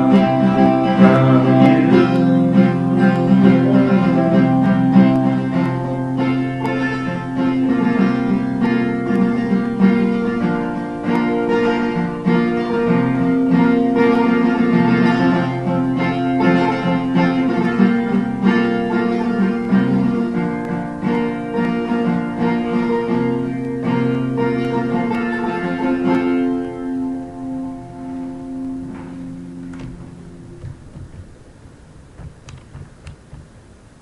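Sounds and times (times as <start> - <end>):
acoustic guitar chords: 0.0 - 34.0.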